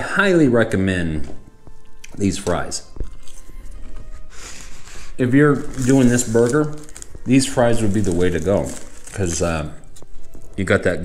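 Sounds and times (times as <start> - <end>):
soft background music: 0.0 - 11.0
man chewing: 3.0 - 4.9.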